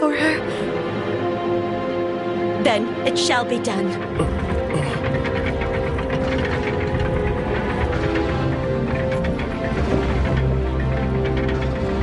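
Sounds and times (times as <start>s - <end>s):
held orchestral notes: 0.0s - 12.0s
wooden pulley hoist grinding and clicking: 2.6s - 12.0s.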